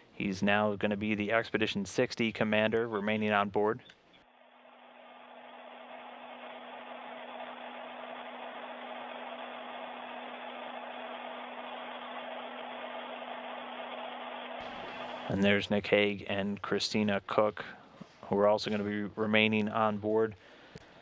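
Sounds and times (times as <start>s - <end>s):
ventilation fan rushing air: 4.4s - 16.0s.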